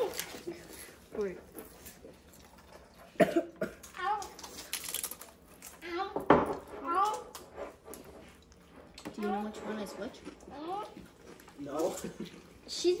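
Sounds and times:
tortilla chip crunch: 3.8s - 5.7s.

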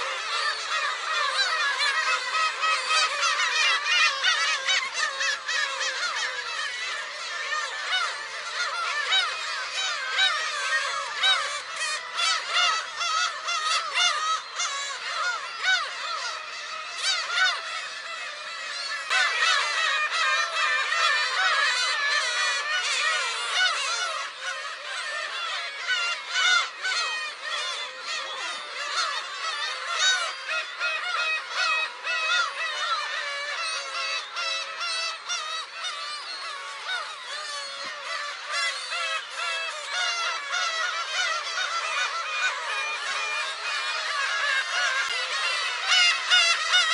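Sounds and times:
gulls calling: 0.0s - 46.9s.

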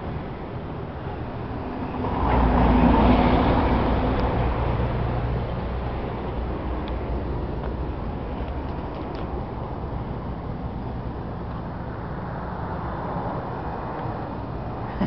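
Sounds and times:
vehicle passing close by: 1.4s - 7.3s.

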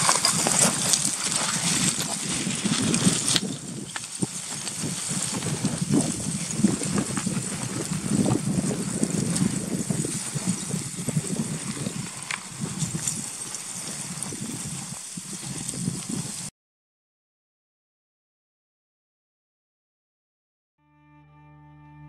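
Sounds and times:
footsteps crunching on gravel: 0.0s - 16.5s.

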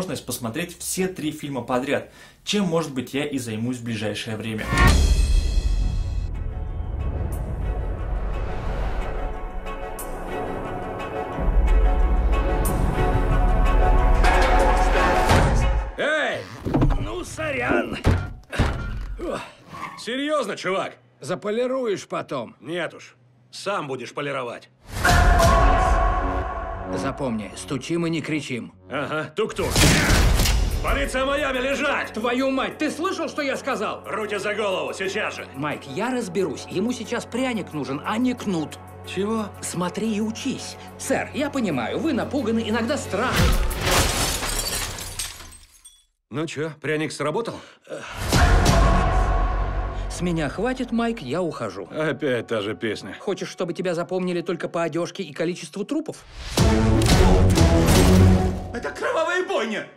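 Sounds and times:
heavy thuds: 16.5s - 19.2s
debris clattering: 43.4s - 46.0s
glass shattering: 43.4s - 46.2s.

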